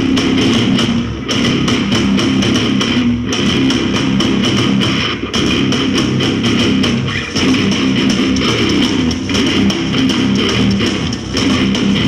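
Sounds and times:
bass guitar: 0.0s - 12.0s
drum kit hits: 0.0s - 12.0s
electric guitar: 0.0s - 12.0s.

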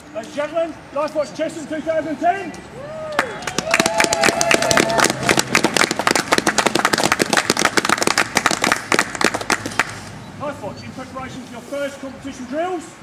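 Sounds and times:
audience applause: 3.2s - 9.9s.

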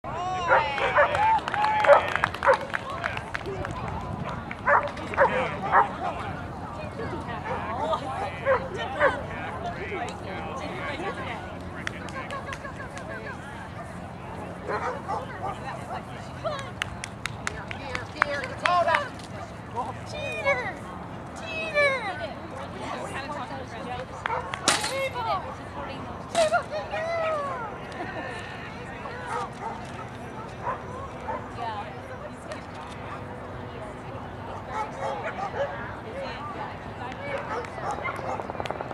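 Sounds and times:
people's voices: 0.1s - 38.9s
dog barking: 4.7s - 6.0s, 14.7s - 15.6s, 30.6s - 31.5s.

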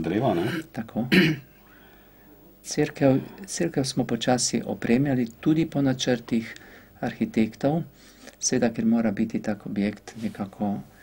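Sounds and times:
man clearing throat: 0.2s - 1.5s.

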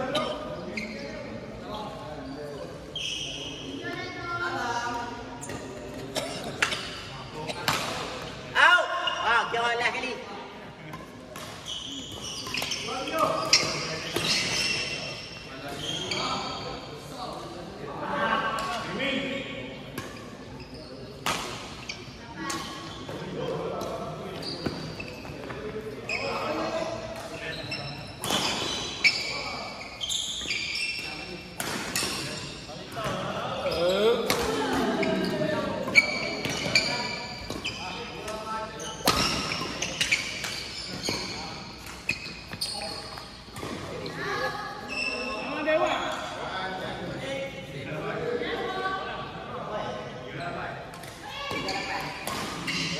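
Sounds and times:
shoes squeaking on court floor: 0.0s - 4.2s, 10.8s - 17.5s, 20.0s - 46.4s, 50.3s - 52.9s.

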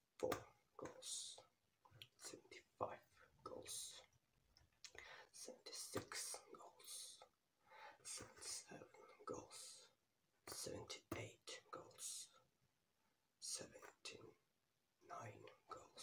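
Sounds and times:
man whispering: 0.1s - 4.2s, 4.9s - 12.5s, 13.4s - 16.0s.

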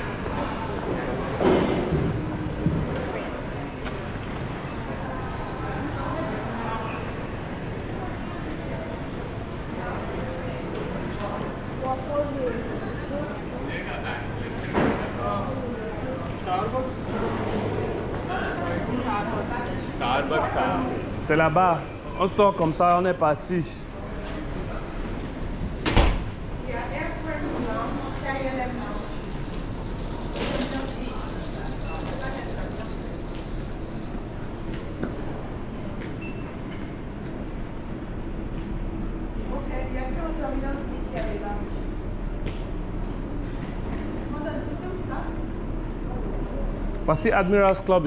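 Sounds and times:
steady low hum: 0.0s - 48.0s.

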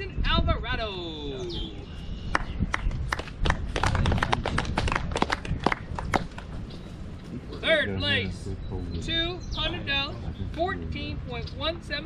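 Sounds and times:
people clapping: 2.4s - 6.6s.

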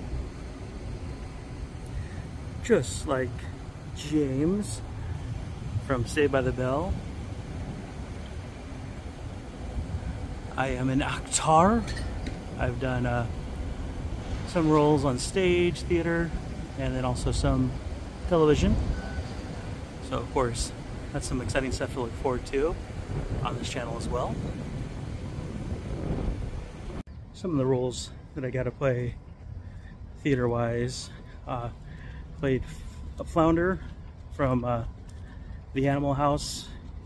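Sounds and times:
wind buffeting microphone: 0.0s - 27.3s
low outdoor rumble: 0.0s - 37.0s.

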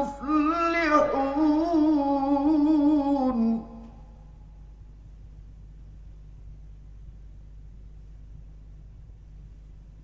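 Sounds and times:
man chanting recitation: 0.0s - 3.9s
faint low hum and hiss: 0.0s - 10.0s.

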